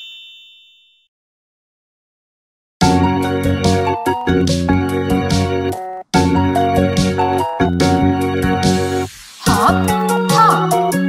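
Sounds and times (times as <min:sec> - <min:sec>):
bright chime ringing: 0:00.0 - 0:01.1.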